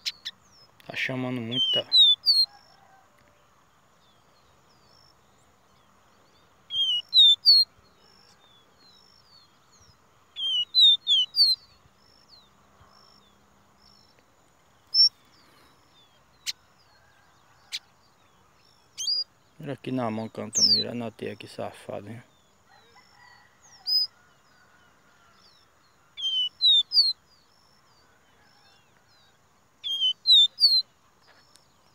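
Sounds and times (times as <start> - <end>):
bird singing whistled notes: 0.0 - 2.8, 4.0 - 14.2, 14.8 - 15.4, 18.6 - 19.6, 20.2 - 21.0, 23.2 - 24.1, 26.2 - 31.9.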